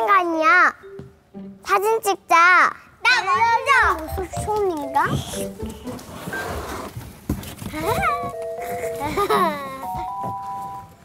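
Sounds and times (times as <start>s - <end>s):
young children's voices: 0.0s - 0.8s, 1.6s - 5.8s, 7.7s - 8.4s
light background music: 0.0s - 11.0s.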